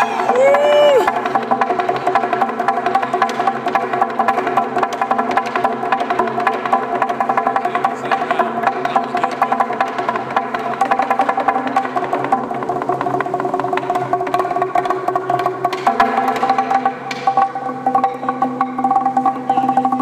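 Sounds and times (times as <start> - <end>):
sticks striking wooden planks: 0.3 - 20.0.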